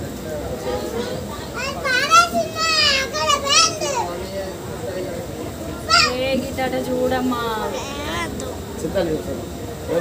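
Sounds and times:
children calling out: 0.6s - 4.2s, 5.8s - 6.3s, 7.6s - 8.6s.

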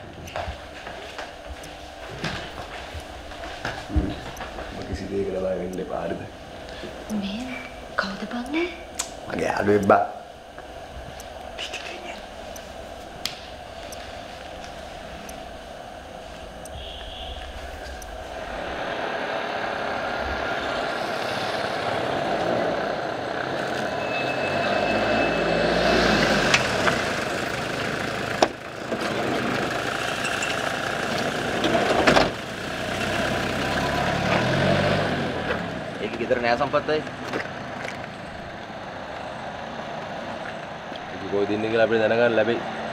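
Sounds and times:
sharp clicks: 8.4s - 9.2s, 10.6s - 18.5s
vehicles passing on a street: 16.8s - 42.9s.

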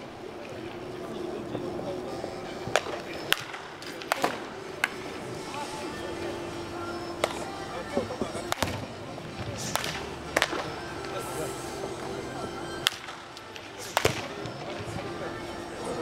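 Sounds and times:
background music: 0.0s - 16.0s
voices: 0.0s - 16.0s
baseball bats cracking on balls: 2.4s - 16.0s.

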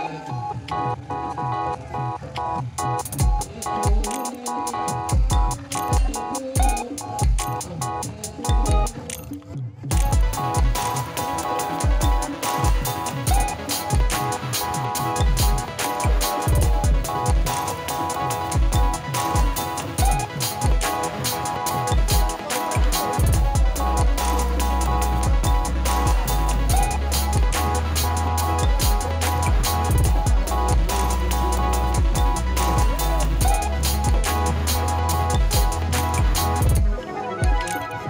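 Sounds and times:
drums with deep booming strokes: 3.1s - 4.1s, 9.9s - 36.9s
sustained melody: 9.9s - 38.0s.

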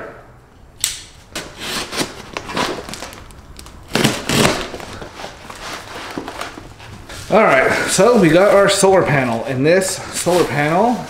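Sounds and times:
cardboard and plastic rustling: 1.3s - 11.0s.

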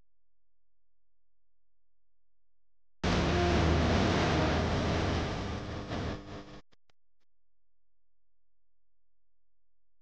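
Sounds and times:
cars driving on highway: 3.0s - 6.2s.

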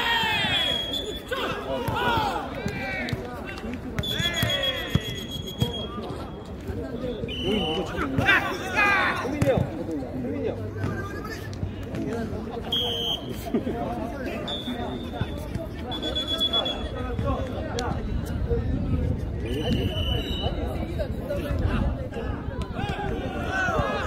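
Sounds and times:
players shouting: 0.0s - 6.2s, 7.2s - 9.6s, 22.1s - 24.0s.

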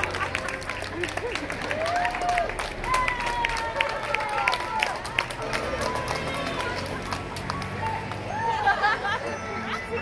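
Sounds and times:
voices: 2.8s - 10.0s
music playing: 5.1s - 10.0s.

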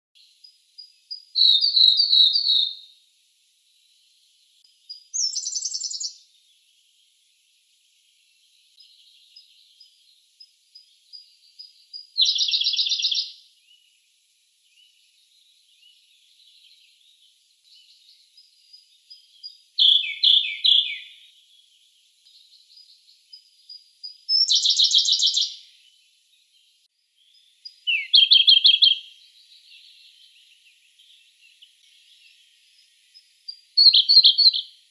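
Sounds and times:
bird singing trilled phrases: 0.2s - 2.9s, 4.7s - 7.2s, 8.3s - 14.0s, 14.6s - 34.9s.

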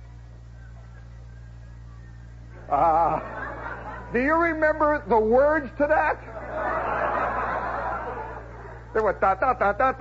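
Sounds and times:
audience laughing: 2.6s - 4.6s, 6.2s - 9.3s.

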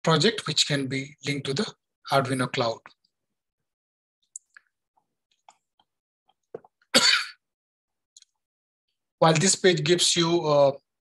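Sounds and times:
man coughing: 7.0s - 7.4s.

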